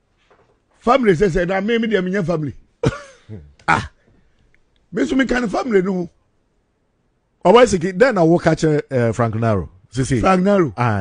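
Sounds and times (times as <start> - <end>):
man speaking: 0.8 - 4.0, 4.9 - 6.2, 7.4 - 11.0
man clearing throat: 2.8 - 4.0.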